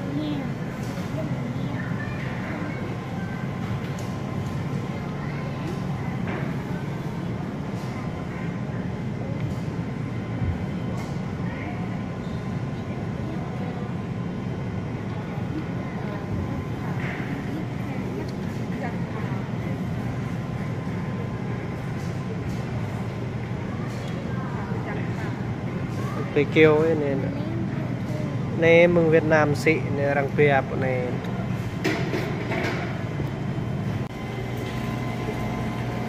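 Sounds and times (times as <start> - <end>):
faint voices of shoppers: 0.0 - 36.0
ventilation and refrigerator hum: 0.0 - 36.0.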